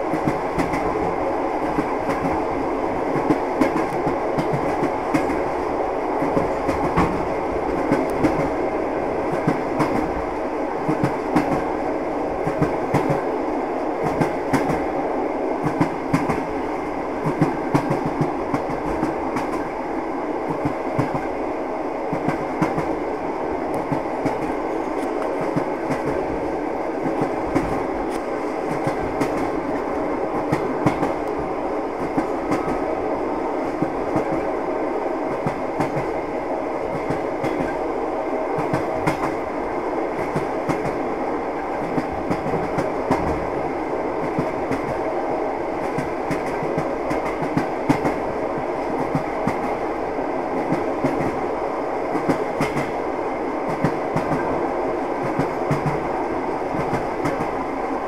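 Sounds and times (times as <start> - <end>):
train wheels rolling on rails: 0.0 - 58.0.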